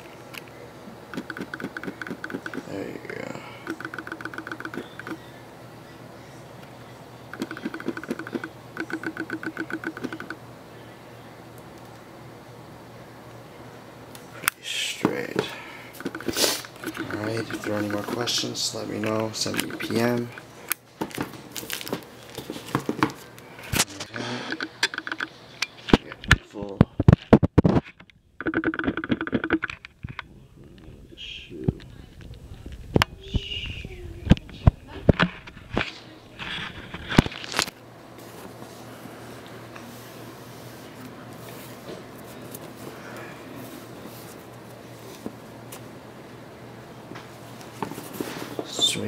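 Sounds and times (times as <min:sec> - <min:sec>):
sharp knocks and clicks: 0:01.1 - 0:02.7, 0:03.7 - 0:05.2, 0:07.3 - 0:10.4, 0:16.0 - 0:18.2, 0:24.5 - 0:26.4, 0:27.0 - 0:30.2.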